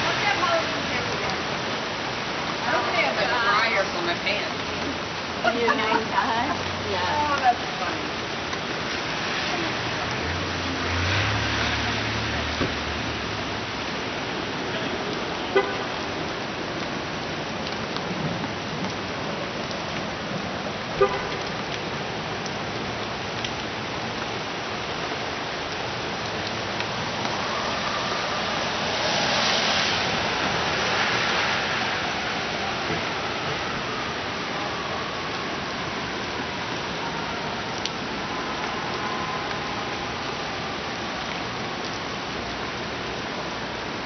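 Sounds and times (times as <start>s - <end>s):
rain hissing: 0.0s - 44.0s
traffic on wet pavement: 0.0s - 44.0s
car swishing past: 9.0s - 13.7s, 27.6s - 33.2s.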